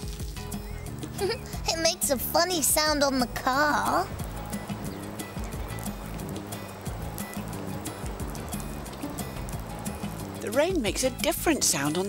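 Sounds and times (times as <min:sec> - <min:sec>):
gentle background music: 0:00.0 - 0:12.0
rain tapping on a car: 0:02.6 - 0:12.0.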